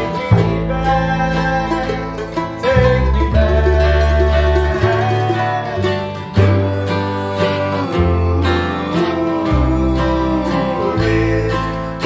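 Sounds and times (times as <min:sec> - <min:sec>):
bluegrass string band: 0:00.0 - 0:12.0.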